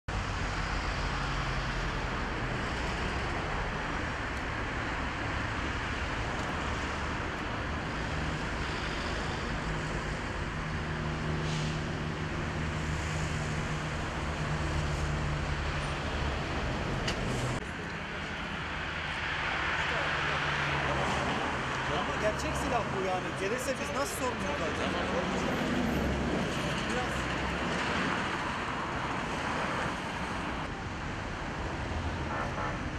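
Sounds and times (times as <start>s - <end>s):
road traffic engine hum: 0.1s - 32.9s.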